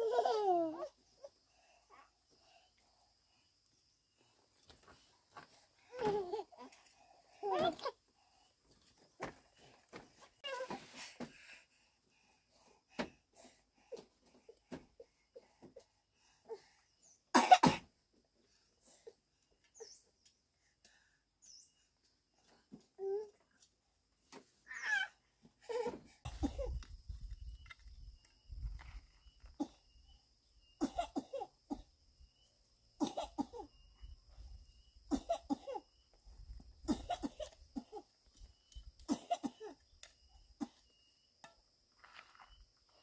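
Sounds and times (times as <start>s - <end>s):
person coughing: 17.4s - 17.9s.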